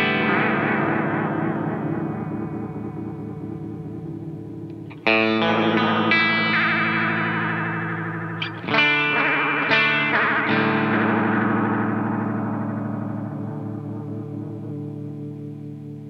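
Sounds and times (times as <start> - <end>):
overdriven electric guitar chords: 0.0 - 16.0.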